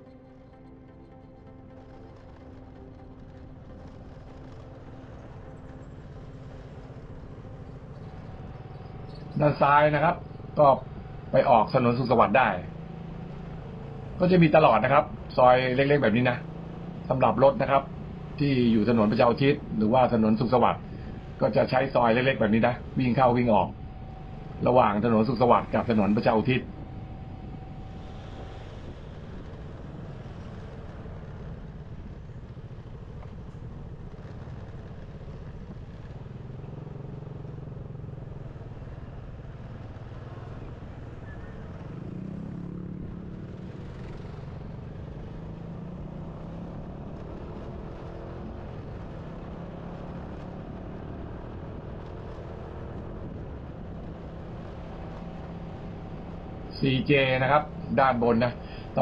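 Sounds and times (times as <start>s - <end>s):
road noise: 0.0s - 59.0s
motorcycle engine revving: 1.8s - 59.0s.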